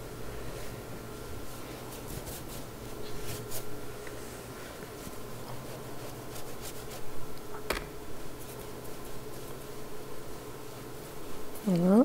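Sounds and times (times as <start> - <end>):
brush stroking on paper: 1.4 - 3.7, 4.6 - 7.1.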